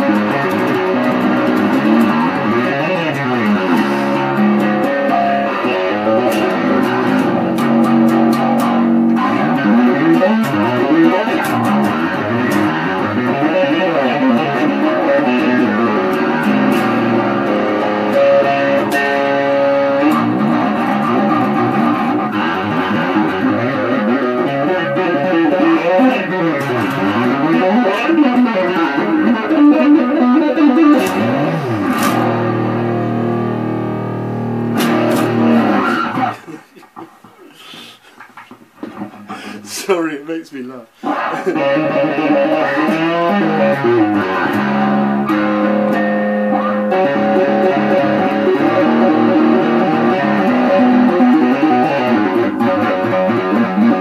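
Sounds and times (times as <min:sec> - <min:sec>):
tapped electric bass guitar: 0:00.0 - 0:39.8, 0:41.0 - 0:54.0.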